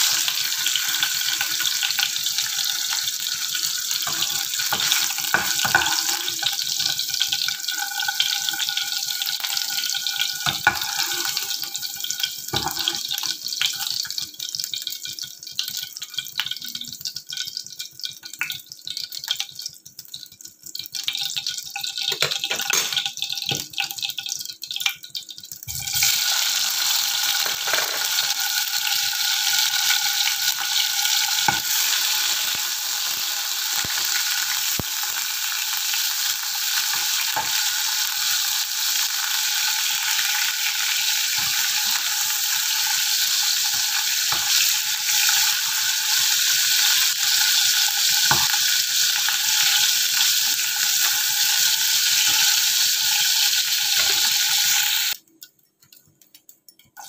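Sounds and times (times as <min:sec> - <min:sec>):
cheese cubes sizzling in oil: 0:00.0 - 0:55.2.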